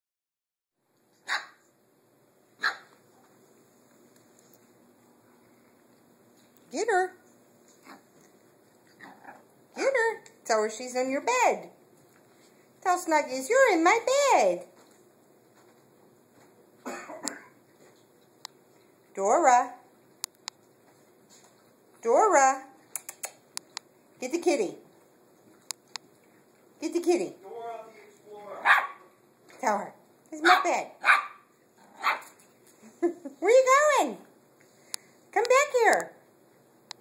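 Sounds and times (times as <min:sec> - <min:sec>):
puppy barking: 0:01.2 - 0:01.7, 0:02.6 - 0:03.0, 0:28.6 - 0:29.1, 0:30.4 - 0:32.4
person coughing: 0:16.8 - 0:17.6.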